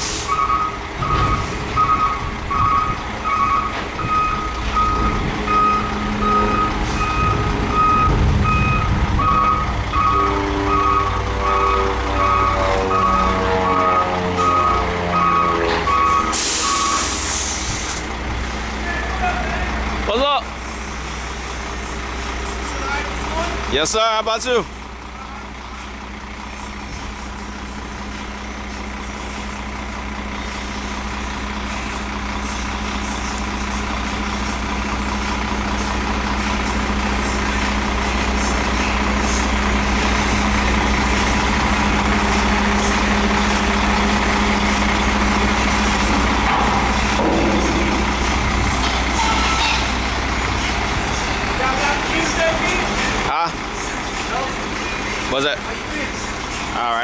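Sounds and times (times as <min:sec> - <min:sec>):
diesel truck engine running: 0:00.0 - 0:57.0.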